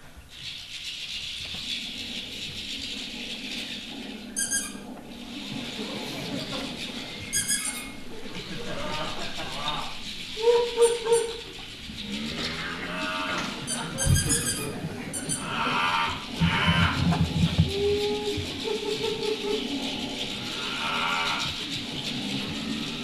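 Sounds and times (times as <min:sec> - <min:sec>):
rattle shaken: 0:00.4 - 0:23.0
low drumming: 0:11.6 - 0:19.3
mooing noisemaker calls: 0:12.1 - 0:18.4.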